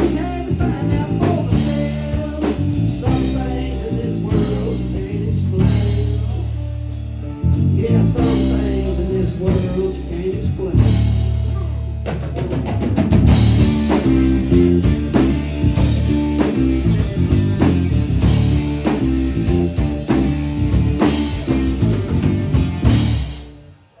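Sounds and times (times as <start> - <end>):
acoustic and electric guitars: 0.0 - 23.7
drum kit steady beat: 0.0 - 24.0.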